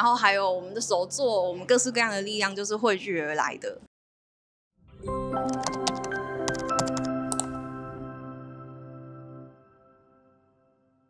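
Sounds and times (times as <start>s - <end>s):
background music sustained chord: 4.9s - 10.9s
computer keyboard typing: 5.4s - 7.6s.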